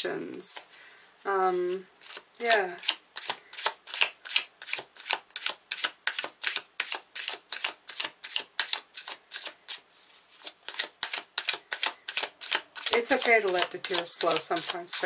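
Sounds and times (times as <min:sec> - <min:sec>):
cards being shuffled: 0:02.0 - 0:15.0.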